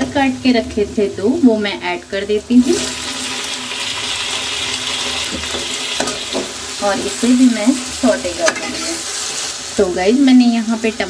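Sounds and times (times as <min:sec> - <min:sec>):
tomatoes sizzling in hot oil: 0:00.0 - 0:11.0.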